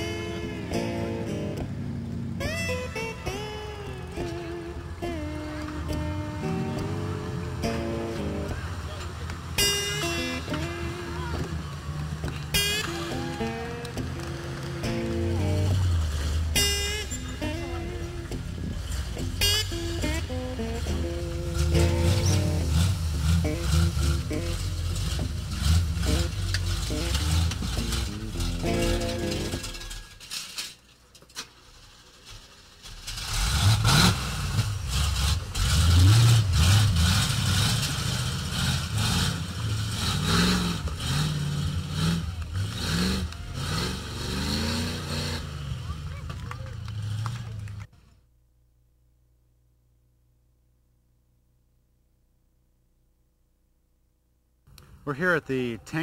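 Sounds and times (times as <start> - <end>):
pickup truck engine revving: 0.0 - 30.0, 32.9 - 47.9
voices: 3.8 - 22.7, 45.7 - 47.9, 55.1 - 56.0.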